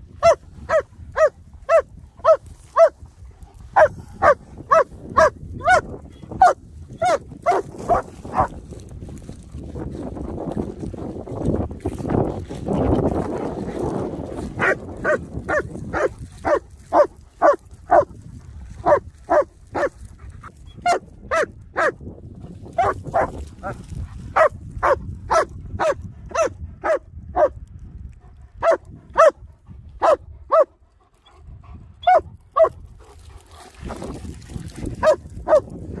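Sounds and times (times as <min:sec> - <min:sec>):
dog barking: 0:00.2 - 0:03.0, 0:03.7 - 0:08.6, 0:14.6 - 0:18.2, 0:18.8 - 0:20.0, 0:20.7 - 0:22.0, 0:22.8 - 0:27.6, 0:28.6 - 0:29.4, 0:30.0 - 0:30.7, 0:32.0 - 0:32.8, 0:35.0 - 0:36.0.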